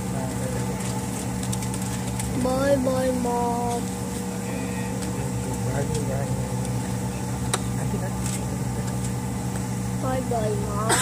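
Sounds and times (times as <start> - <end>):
jet engines droning in cabin: 0.0 - 11.0.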